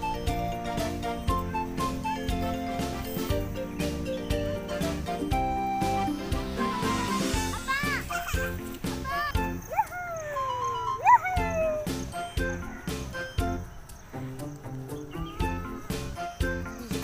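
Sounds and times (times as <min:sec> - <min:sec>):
background music with beat: 0:00.0 - 0:09.6, 0:11.5 - 0:17.0.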